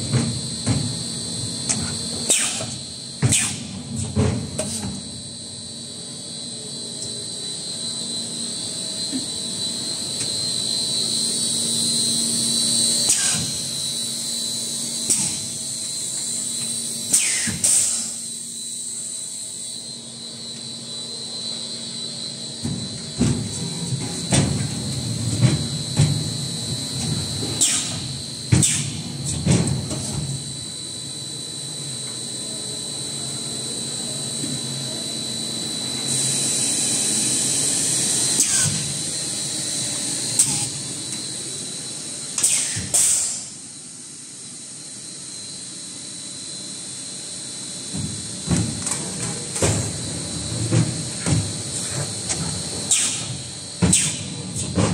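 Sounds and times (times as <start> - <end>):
machine hum with high whine: 0.0 - 54.9
air hissing: 12.4 - 18.6.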